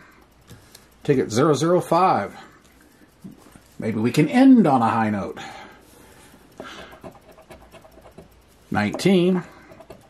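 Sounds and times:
lottery ticket being scratched: 6.5s - 10.0s.

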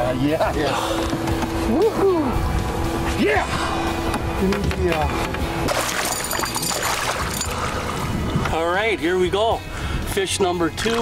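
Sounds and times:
water splashing: 5.6s - 8.5s
fish thrashing in water: 5.7s - 8.4s
wind on microphone: 7.1s - 8.6s.

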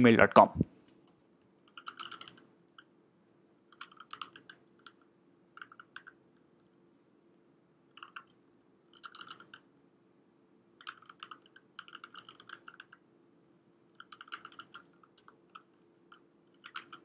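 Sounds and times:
faint keyboard typing: 0.8s - 2.9s, 3.6s - 6.8s, 7.9s - 9.7s, 10.8s - 13.1s, 13.9s - 17.0s.

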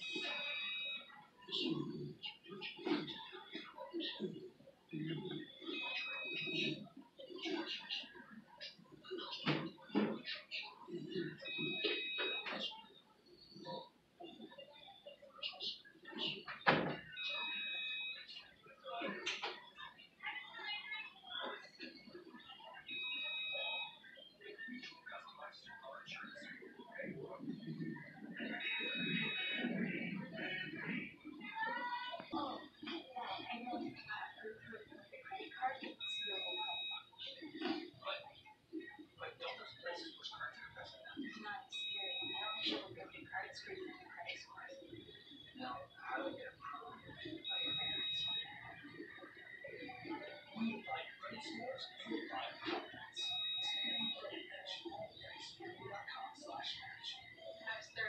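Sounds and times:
distant voices talking: 0.0s - 58.0s.

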